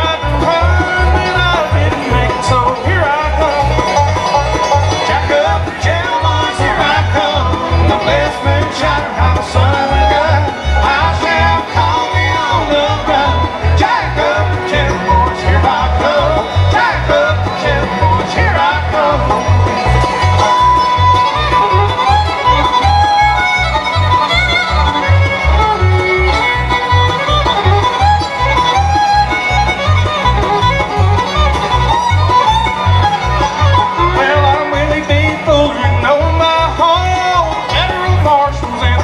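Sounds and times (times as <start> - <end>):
acoustic guitar: 0.0 - 39.0
banjo: 0.0 - 39.0
fiddle: 0.0 - 39.0
mandolin: 0.0 - 39.0
pulsing bass beat: 0.0 - 39.0.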